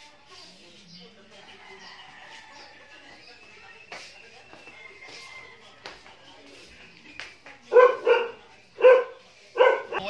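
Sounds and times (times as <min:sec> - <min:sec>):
dog barking: 0:07.7 - 0:10.0.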